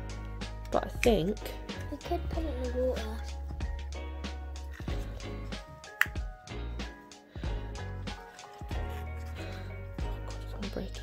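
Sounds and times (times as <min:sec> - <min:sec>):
upbeat electronic music: 0:00.0 - 0:09.0.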